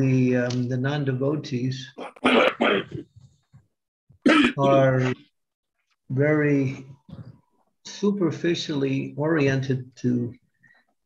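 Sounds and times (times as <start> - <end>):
man clearing his throat: 2.0 - 3.1, 4.2 - 5.0.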